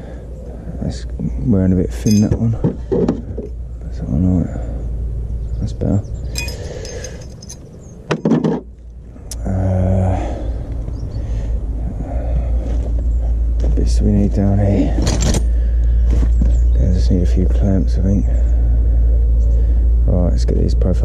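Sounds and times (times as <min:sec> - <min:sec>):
steady engine hum: 0:00.0 - 0:21.0
light metal clinks: 0:02.0 - 0:02.6, 0:06.2 - 0:07.7
low rumble: 0:08.7 - 0:21.0.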